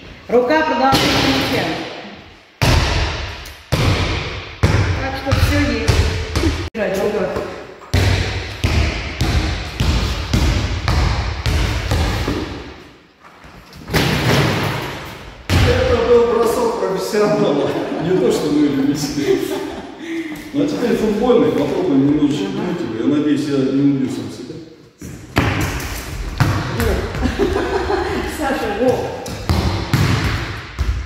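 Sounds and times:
ball bouncing on hall floor: 0.8s - 12.9s, 25.0s - 31.0s.

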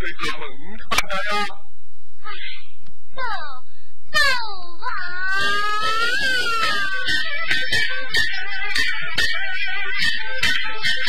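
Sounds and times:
long high bending melody note: 5.3s - 11.0s.

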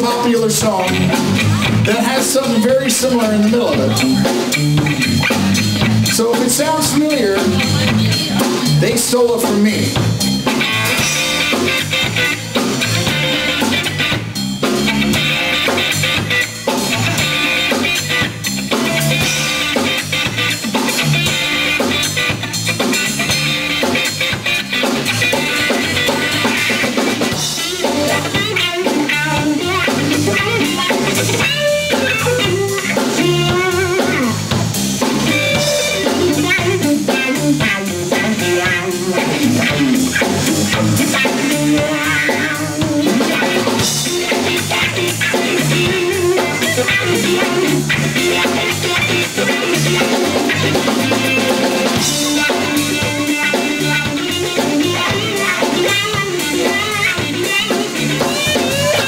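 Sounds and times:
drum kit steady beat: 0.0s - 59.0s
electric bass: 0.0s - 59.0s
electric guitar lead lines: 0.0s - 59.0s.

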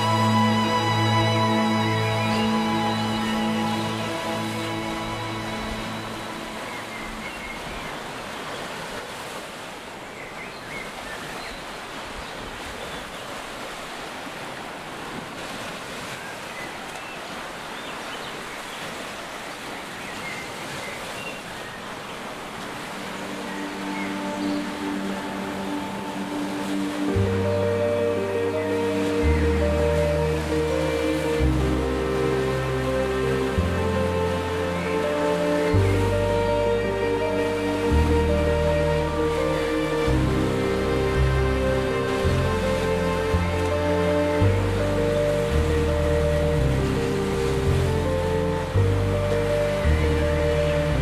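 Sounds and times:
soft music with held notes: 0.0s - 7.8s, 22.8s - 51.0s
waves on a lake shore: 0.0s - 51.0s.

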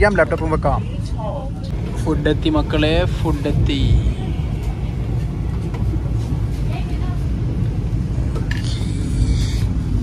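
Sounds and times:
train running rumble: 0.0s - 10.0s.

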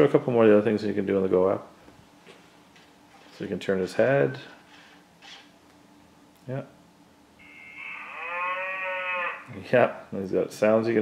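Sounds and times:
robot pitched call sound effect: 7.4s - 9.6s.

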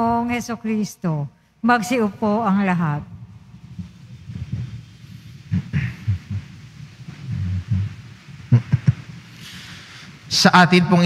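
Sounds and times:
low thumps and shuffling: 3.0s - 10.3s.

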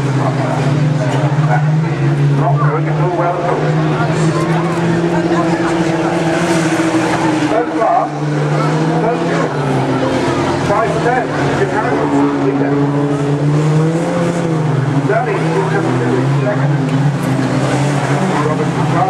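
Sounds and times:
racing car engines passing: 0.0s - 19.0s
spectators' voices: 0.0s - 19.0s.

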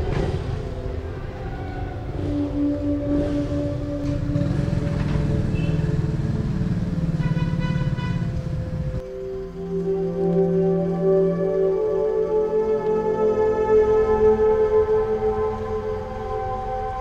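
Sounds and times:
vehicle engine passing: 0.0s - 9.1s
soft ambient music: 0.0s - 17.0s.

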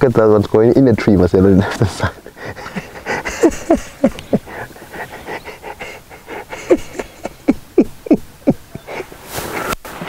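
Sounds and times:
man laughing in breathy bursts: 1.6s - 10.0s.

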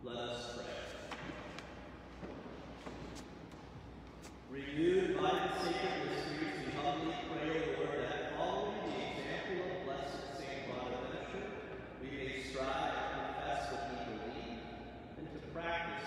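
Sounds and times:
man praying aloud: 4.5s - 14.6s.

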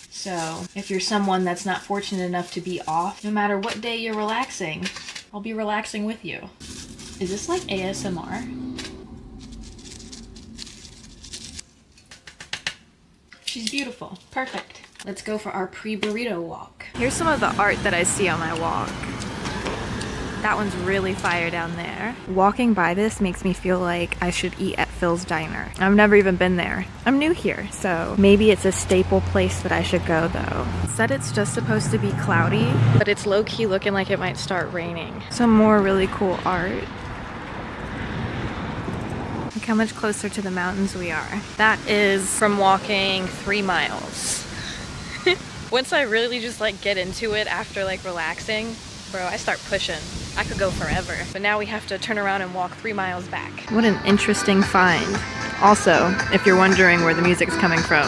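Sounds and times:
low hum: 6.5s - 11.6s
street traffic rush: 6.5s - 11.6s, 16.9s - 58.0s
wind buffeting microphone: 49.6s - 51.4s.

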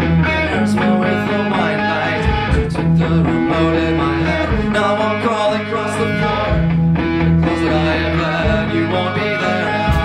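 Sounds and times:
drum kit: 0.0s - 5.2s, 6.2s - 10.0s
electric bass: 0.0s - 10.0s
electric guitar: 0.0s - 10.0s.

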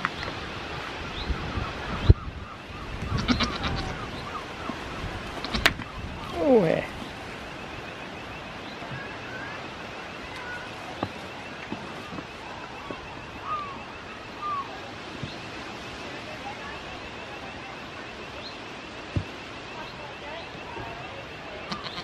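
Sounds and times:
goat bleating: 3.2s - 3.9s, 21.7s - 22.0s.

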